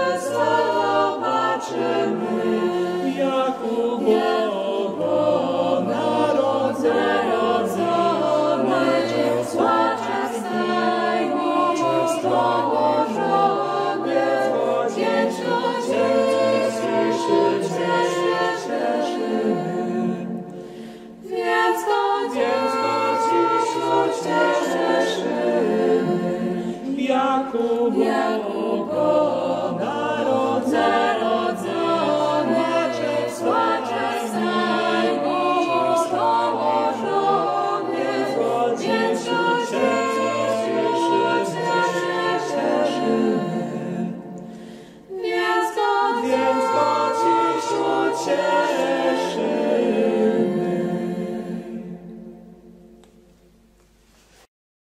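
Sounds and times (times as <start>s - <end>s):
mixed choir singing a cappella: 0.0s - 54.5s.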